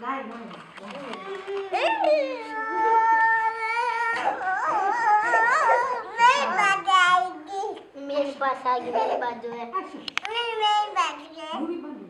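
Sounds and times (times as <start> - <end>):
girl wailing: 1.6 - 6.8.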